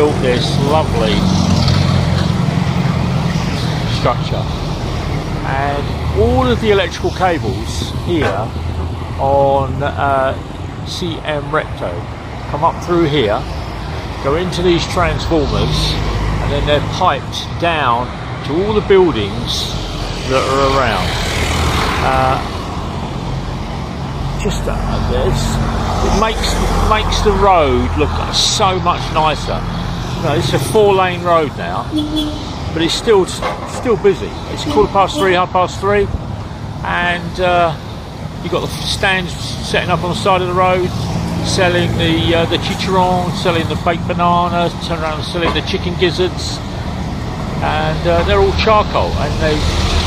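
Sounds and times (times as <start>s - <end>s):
road and wind noise: 0.0s - 50.0s
street traffic: 0.0s - 50.0s
vehicle engine humming: 0.0s - 50.0s.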